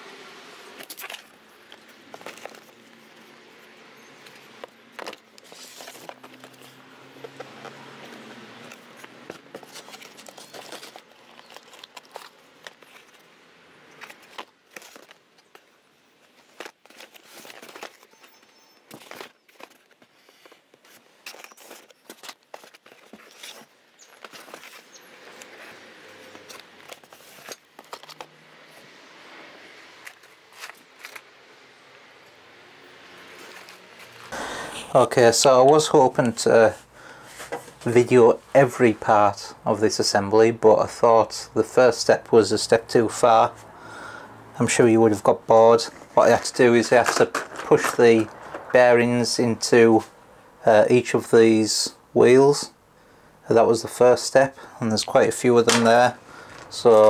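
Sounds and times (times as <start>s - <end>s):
cardboard rustling and scraping: 0.8s - 13.3s, 13.9s - 28.9s, 29.6s - 31.3s, 33.2s - 34.3s, 44.6s - 49.4s.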